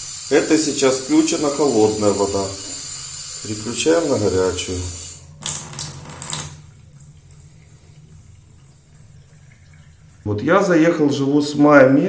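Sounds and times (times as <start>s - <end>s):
tap water running into basin: 0.0s - 10.4s.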